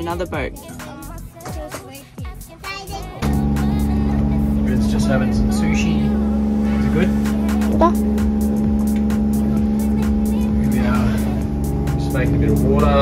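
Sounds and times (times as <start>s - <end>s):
music playing: 0.0s - 13.0s
boat motor droning: 3.0s - 13.0s.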